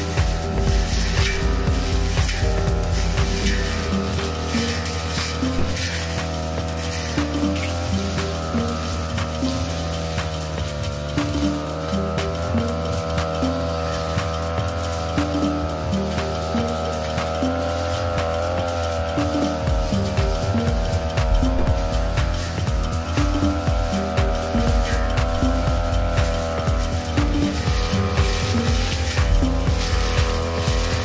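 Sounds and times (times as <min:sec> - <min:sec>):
background music: 0:00.0 - 0:31.0
brush cutter engine running: 0:00.0 - 0:31.0.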